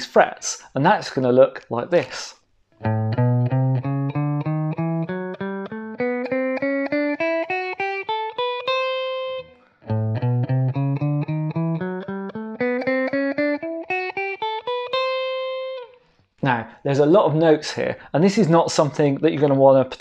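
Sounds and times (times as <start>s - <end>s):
clean electric guitar notes: 2.8s - 16.0s.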